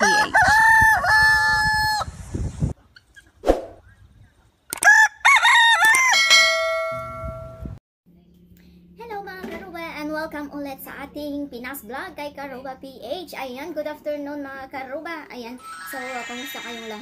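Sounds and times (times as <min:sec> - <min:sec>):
rooster crowing: 0:00.0 - 0:02.1, 0:04.8 - 0:06.4
multi-tone chime: 0:15.6 - 0:17.0.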